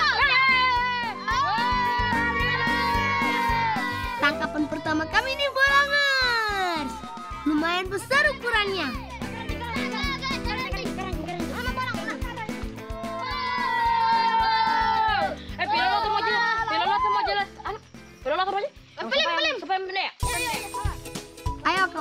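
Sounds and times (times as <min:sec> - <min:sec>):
children talking: 0:00.0 - 0:21.1
background music: 0:00.0 - 0:22.0.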